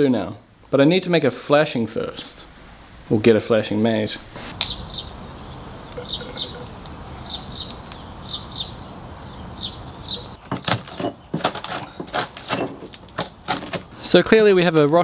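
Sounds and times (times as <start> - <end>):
steady low background noise: 0.0 - 10.4
bird chirping: 4.5 - 11.4
metal tool scraping wood: 10.5 - 13.9.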